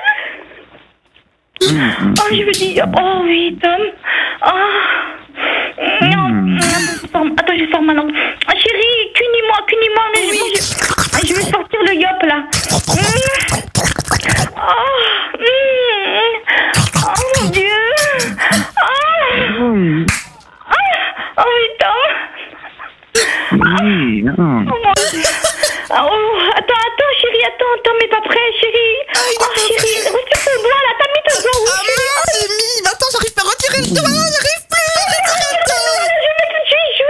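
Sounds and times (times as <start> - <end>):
theatrical moaning and gasps: 5.8 - 7.2, 12.6 - 15.1, 16.7 - 20.4, 25.0 - 25.9, 29.1 - 30.7
breathy hiss: 16.5 - 18.8, 25.0 - 25.9
sharp smack: 20.1 - 20.4.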